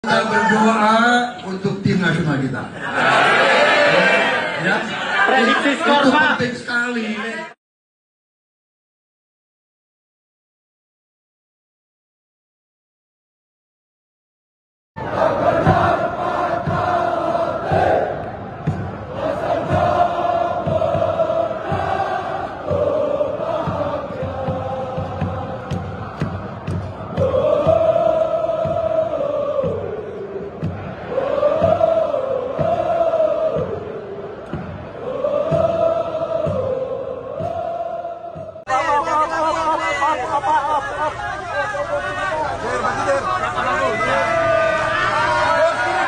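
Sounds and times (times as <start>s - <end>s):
crowd chanting in unison: 2.7s - 7.6s, 15.0s - 46.0s
steady drumbeat: 15.0s - 40.4s.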